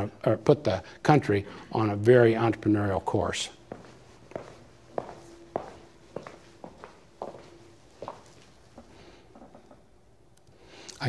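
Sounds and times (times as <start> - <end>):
footsteps on stage floor: 3.6 - 8.9.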